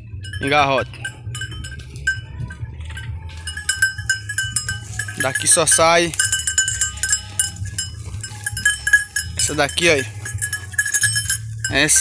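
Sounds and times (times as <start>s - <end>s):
low steady rumble: 0.0s - 12.0s
sheep bells clinking: 0.0s - 12.0s.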